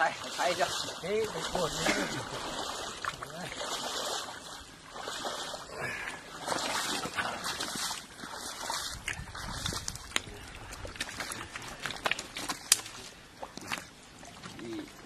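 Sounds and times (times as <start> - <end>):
water sloshing and splashing: 0.0 - 15.0.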